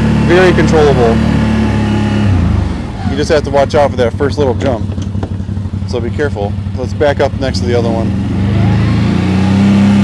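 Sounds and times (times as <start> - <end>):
atv engine pulling: 0.0 - 10.0.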